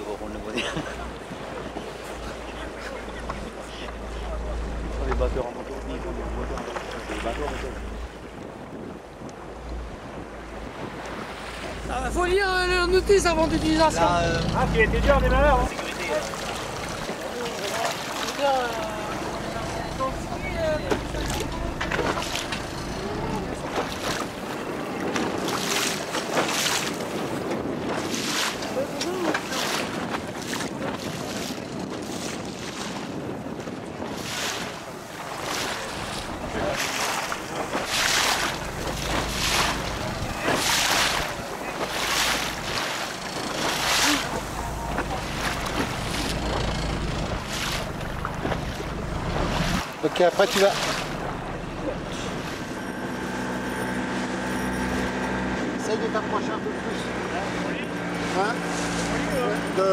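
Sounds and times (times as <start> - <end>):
water slapping boat hull: 0.0 - 59.9
wind buffeting microphone: 0.9 - 52.5.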